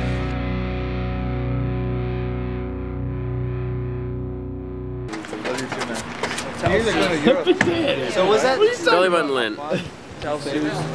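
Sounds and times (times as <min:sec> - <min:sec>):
distorted electric guitar chord: 0:00.0 - 0:05.1.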